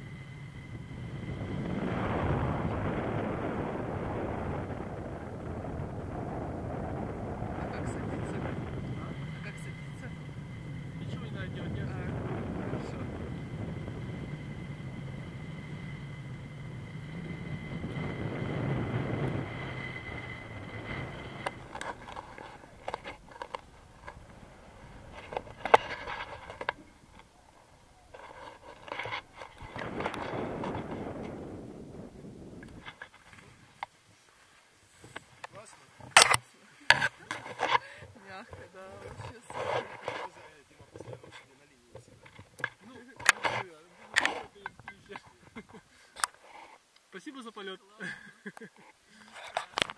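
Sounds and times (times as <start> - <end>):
wind rushing over microphone: 0.0 - 33.8
clicks and rustles: 21.4 - 24.4.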